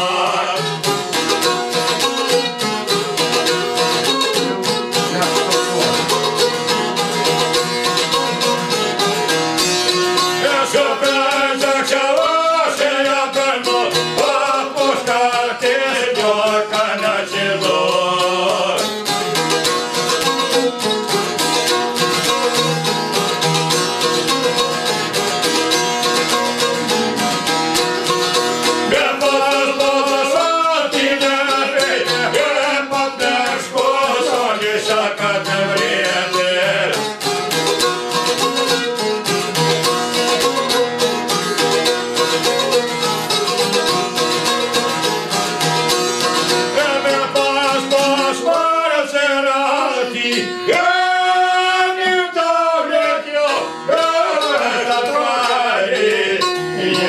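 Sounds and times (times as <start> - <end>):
man singing: 0.0 - 1.0, 10.2 - 19.0, 28.9 - 37.1, 46.7 - 57.0
plucked lutes: 0.0 - 57.0.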